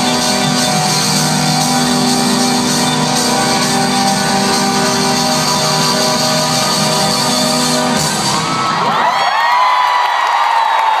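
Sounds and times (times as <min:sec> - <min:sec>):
crowd cheering and screaming: 0:00.0 - 0:11.0
live concert music: 0:00.0 - 0:11.0.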